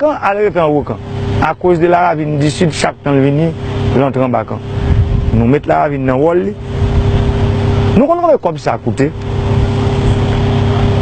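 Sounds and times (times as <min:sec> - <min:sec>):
loud low rumble with hum: 0:00.0 - 0:11.0.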